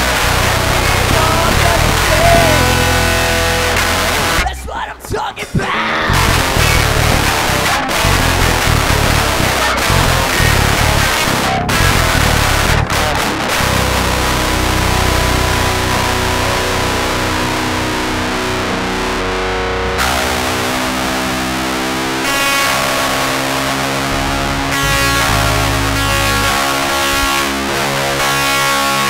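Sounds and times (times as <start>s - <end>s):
bass guitar: 0.0s - 29.0s
electric guitar: 0.0s - 29.0s.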